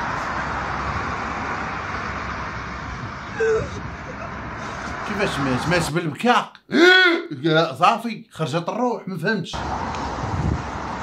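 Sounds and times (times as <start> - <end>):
road traffic noise: 0.0 - 6.0, 9.5 - 11.0.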